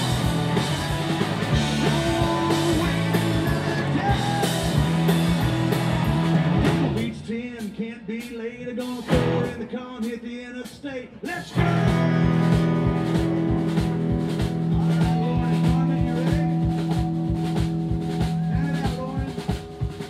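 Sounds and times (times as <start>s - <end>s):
electric guitar bending notes: 0.0s - 7.0s, 9.1s - 9.6s, 11.6s - 20.0s
drum hits: 0.0s - 7.1s, 9.1s - 9.6s, 11.5s - 20.0s
live rock band playing: 0.0s - 20.0s.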